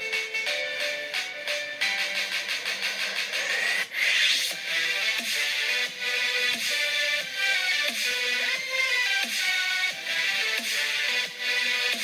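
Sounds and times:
music: 0.0 - 12.0
harsh rasping noise sweep: 2.0 - 6.0.

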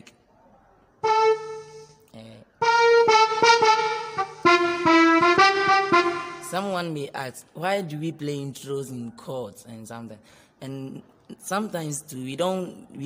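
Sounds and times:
electronic keyboard chords: 1.0 - 6.8.

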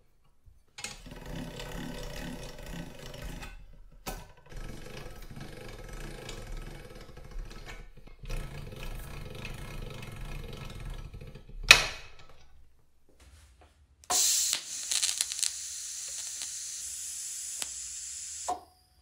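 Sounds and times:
steel rollers rumbling: 0.9 - 11.6.

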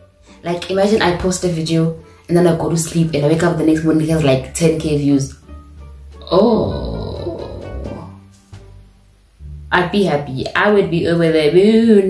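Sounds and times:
soft background music: 0.0 - 12.0
woman exclaiming ooh: 6.2 - 8.1.

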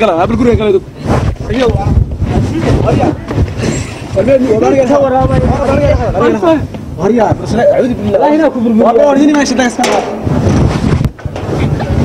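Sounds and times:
people's voices in scuffle: 0.0 - 12.0.

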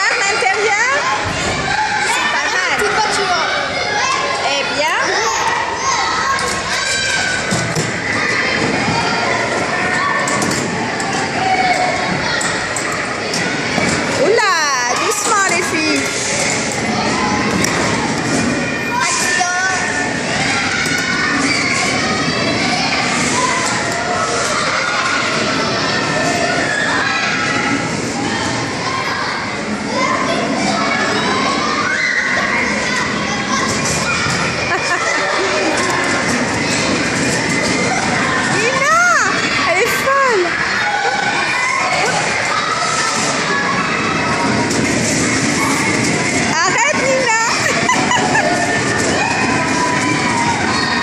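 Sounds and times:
children shouting and chattering: 0.0 - 51.0
din of many voices: 0.0 - 51.0.

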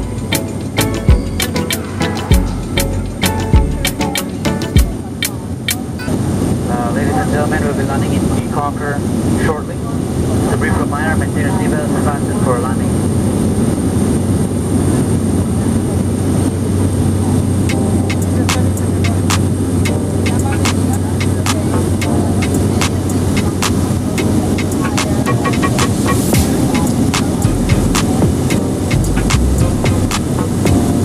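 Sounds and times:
propeller plane engine drone: 9.0 - 31.0.

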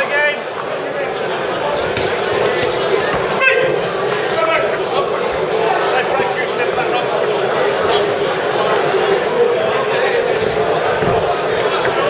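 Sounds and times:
spectators shouting and talking: 0.0 - 12.0.

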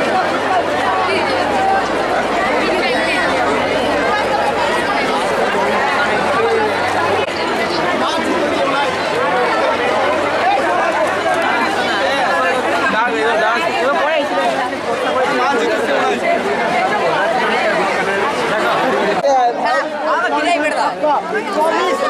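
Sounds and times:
crowd chatter: 0.0 - 22.0.

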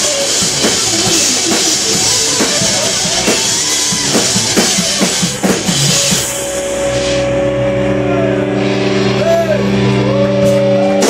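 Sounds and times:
drum fill down the toms: 0.0 - 7.4
guitar and bass chord ringing: 0.0 - 11.0
cymbal wash: 1.8 - 11.0.

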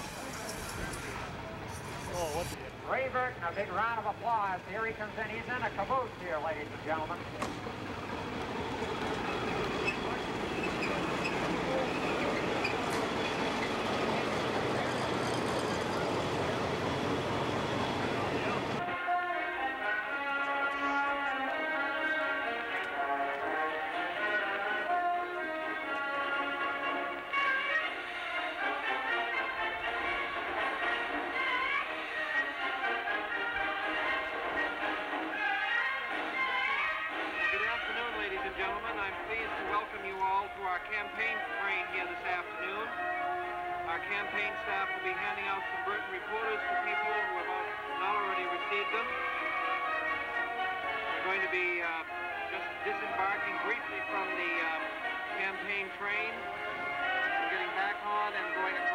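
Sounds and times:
music: 18.8 - 58.9.

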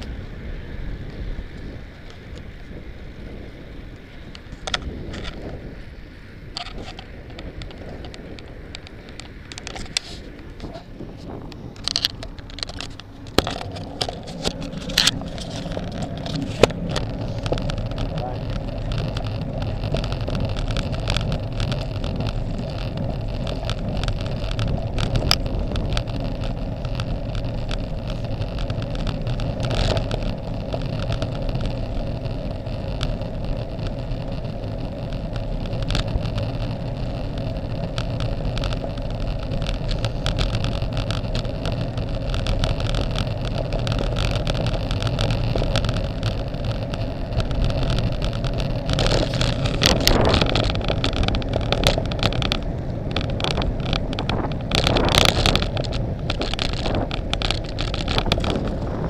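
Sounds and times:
tyres humming on asphalt: 0.0 - 59.0
wind rushing over microphone: 0.0 - 59.0.

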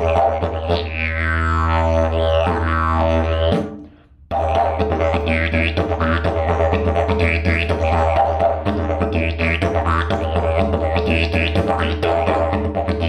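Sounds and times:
didgeridoo drone: 0.0 - 3.6, 4.3 - 13.0.

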